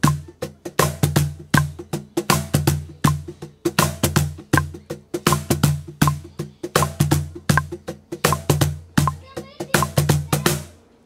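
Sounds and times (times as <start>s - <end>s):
cajon played with hands: 0.0s - 10.9s.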